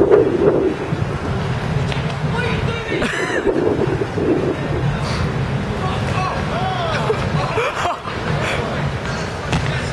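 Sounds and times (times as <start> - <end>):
outdoor crowd chatter: 0.0 - 9.9
wind buffeting microphone: 0.0 - 9.9.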